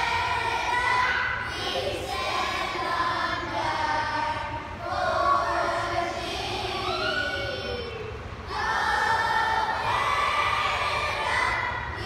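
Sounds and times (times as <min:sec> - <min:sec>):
children singing and shouting: 0:00.0 - 0:12.0.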